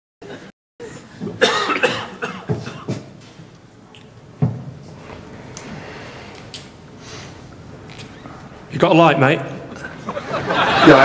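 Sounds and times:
man coughing: 0:00.2 - 0:03.0.

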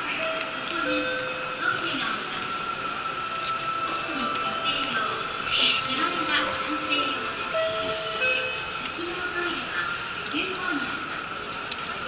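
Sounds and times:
hall and crowd noise: 0:00.0 - 0:12.0.

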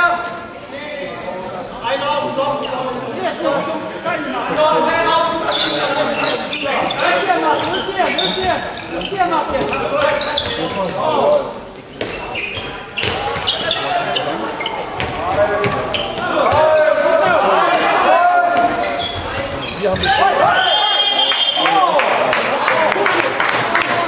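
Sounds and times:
players calling out: 0:00.0 - 0:24.0
referee whistle blast: 0:20.5 - 0:21.6.

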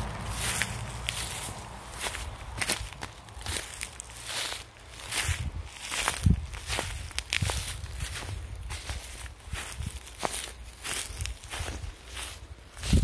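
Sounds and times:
footsteps on grass and dry leaves: 0:00.0 - 0:13.0.

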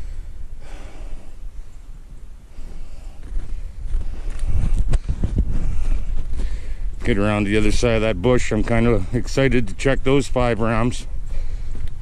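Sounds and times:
wind rumble on microphone: 0:03.0 - 0:08.8
footsteps through deep snow: 0:03.1 - 0:08.9.

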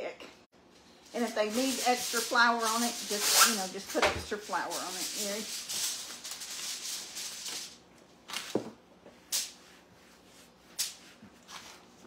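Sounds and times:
flour rustling hiss: 0:00.8 - 0:07.8.

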